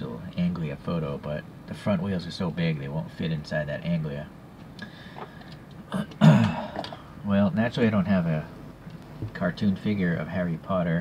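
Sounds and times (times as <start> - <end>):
man coughing: 5.9 - 7.1.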